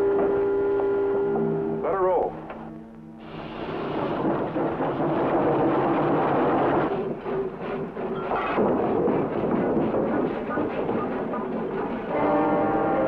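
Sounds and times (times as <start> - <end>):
steam locomotive starting off: 3.2 - 13.0.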